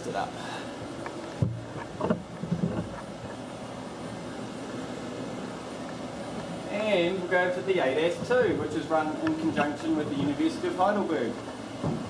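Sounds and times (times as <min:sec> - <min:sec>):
steady room hiss: 0:00.0 - 0:12.0
camera rubbing: 0:01.7 - 0:03.4.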